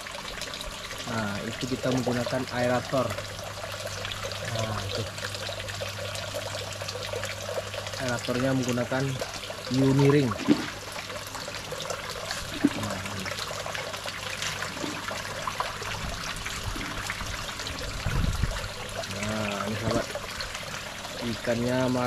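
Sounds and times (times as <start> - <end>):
water pouring from pipe into pond: 0.0 - 22.0
fish splashing at surface: 9.9 - 19.0.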